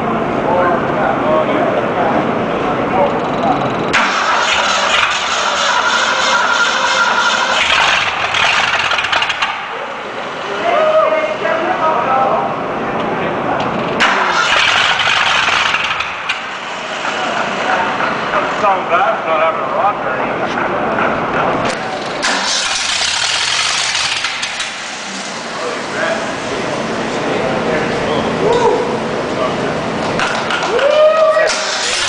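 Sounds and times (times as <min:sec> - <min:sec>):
engine cranked by starter: 0:03.0 - 0:10.6, 0:13.7 - 0:18.7, 0:21.4 - 0:27.0, 0:31.4 - 0:32.0.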